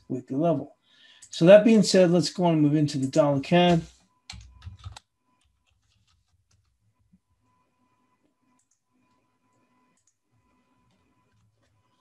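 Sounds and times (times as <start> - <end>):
keyboard keystrokes clicking: 4.3 - 6.7.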